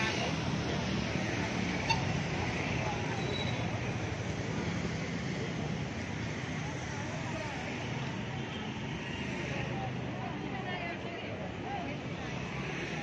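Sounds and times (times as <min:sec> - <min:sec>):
crowd chatter: 0:00.0 - 0:13.0
traffic noise: 0:00.0 - 0:13.0.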